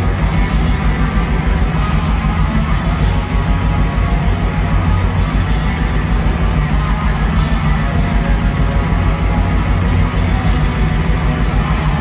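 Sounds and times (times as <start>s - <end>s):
distorted electric guitars: 0.0s - 12.0s
drums: 0.0s - 12.0s
metal band playing live: 0.0s - 12.0s.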